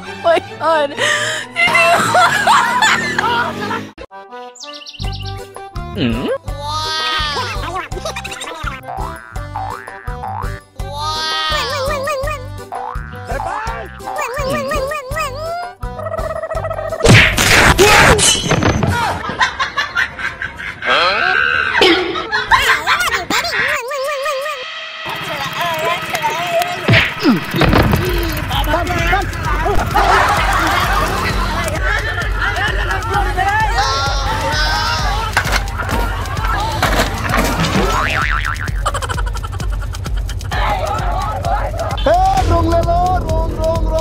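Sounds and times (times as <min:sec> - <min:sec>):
people laughing and snickering: 0:01.0 - 0:04.0, 0:06.0 - 0:09.0, 0:15.8 - 0:17.1, 0:19.0 - 0:23.8, 0:27.2 - 0:42.0
cartoon boing effect: 0:08.9 - 0:10.6, 0:37.8 - 0:38.9
voices crying out: 0:20.9 - 0:21.8, 0:26.0 - 0:37.2
background music with steady beat: 0:25.1 - 0:44.0.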